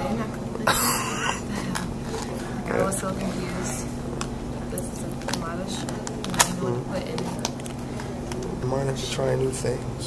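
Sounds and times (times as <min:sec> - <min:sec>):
person coughing: 0:00.6 - 0:01.6.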